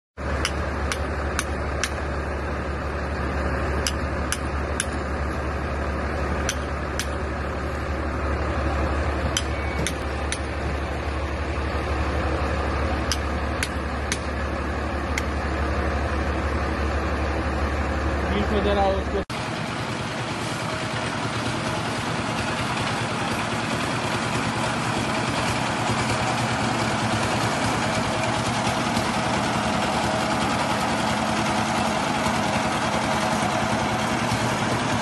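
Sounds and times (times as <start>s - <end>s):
excavator engine idling: 0.2s - 35.0s.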